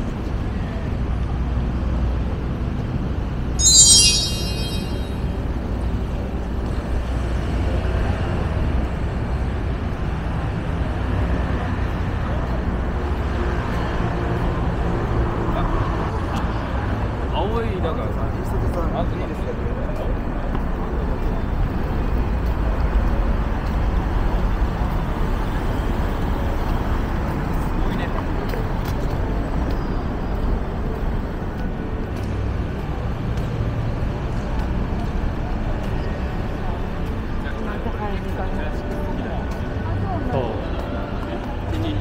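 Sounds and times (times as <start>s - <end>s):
pedestrians talking: 6.2s - 42.0s
road traffic: 6.7s - 42.0s.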